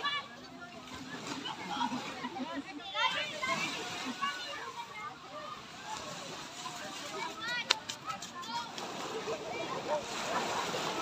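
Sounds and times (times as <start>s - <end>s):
water washing: 0.0s - 11.0s.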